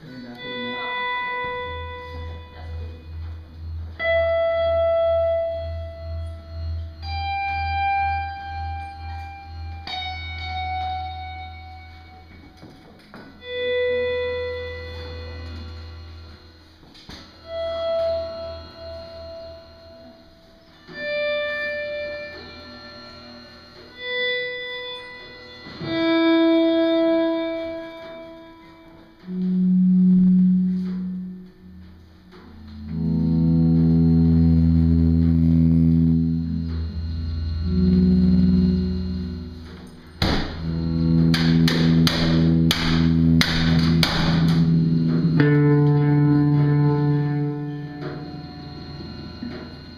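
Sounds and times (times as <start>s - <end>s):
droning rock band notes: 0.0s - 49.9s
heavy drum strikes: 40.2s - 40.7s.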